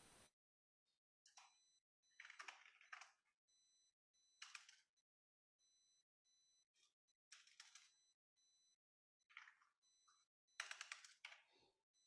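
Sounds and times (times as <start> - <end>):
typing on computer keyboard: 4.4 - 4.8, 7.4 - 7.9, 10.6 - 11.5.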